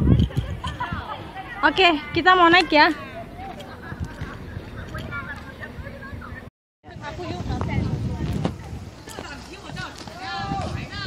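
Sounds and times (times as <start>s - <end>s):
people talking and calling out: 0.0s - 11.0s
wind buffeting microphone: 0.0s - 11.0s.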